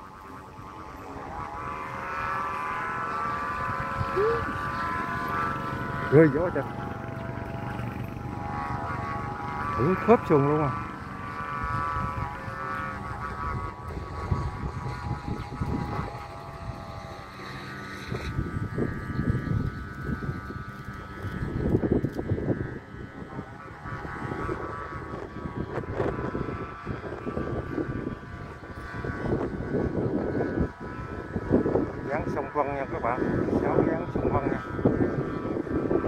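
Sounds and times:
kite flutes humming: 0.0 - 36.0
wind buffeting microphone: 0.0 - 36.0.

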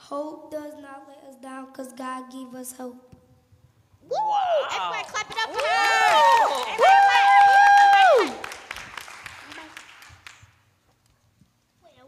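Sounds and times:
person cheering woo: 4.1 - 4.9, 5.6 - 8.5
audience clapping: 4.8 - 10.7.

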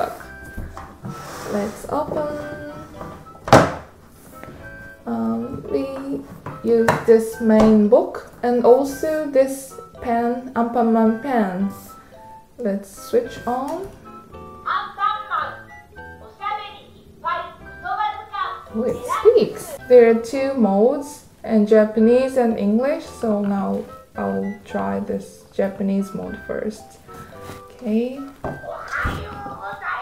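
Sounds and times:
soft background music: 0.0 - 30.0
plastic thunk: 3.4 - 3.9.

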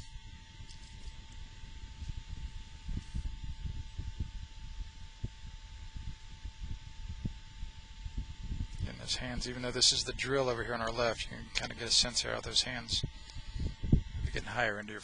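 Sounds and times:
faint high whine: 0.0 - 15.0
low uneven rumble: 0.0 - 15.0.

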